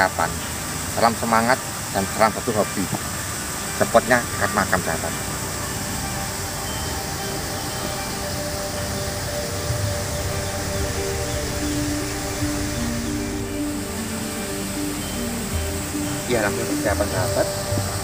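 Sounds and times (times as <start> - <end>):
background music with held notes: 0.0 - 18.0
steady hiss: 0.0 - 18.0.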